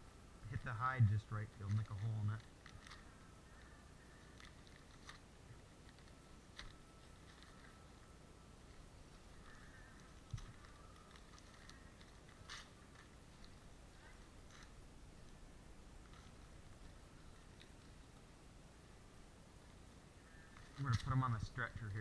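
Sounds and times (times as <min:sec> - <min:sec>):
newspaper crinkling on hide: 0:01.6 - 0:07.9, 0:09.5 - 0:13.6.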